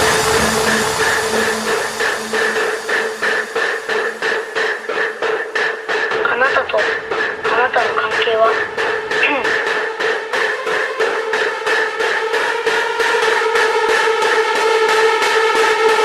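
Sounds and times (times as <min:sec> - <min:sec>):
held synth tones: 0:00.0 - 0:05.2
metallic percussion hits: 0:00.0 - 0:10.7.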